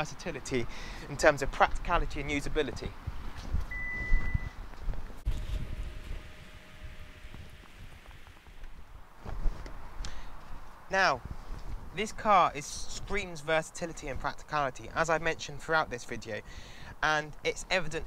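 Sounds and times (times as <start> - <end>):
low rumbling noise: 3.1 - 12.0
electronic beep: 3.7 - 4.6.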